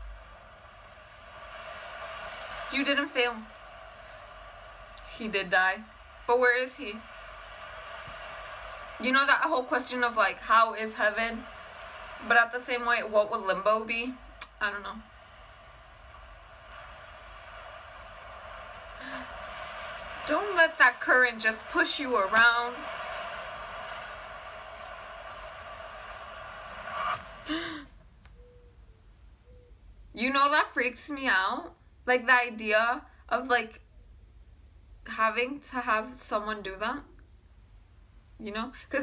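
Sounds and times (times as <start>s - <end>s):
ocean surf through speakers: 0.0s - 27.9s.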